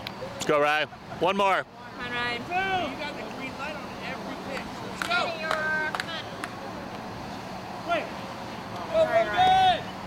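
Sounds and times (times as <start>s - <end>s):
outdoor background hum: 0.0s - 10.0s
spectator shouting: 8.9s - 9.9s.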